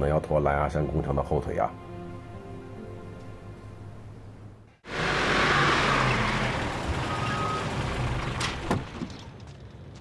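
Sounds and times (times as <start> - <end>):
jeep engine running: 4.9 - 10.0.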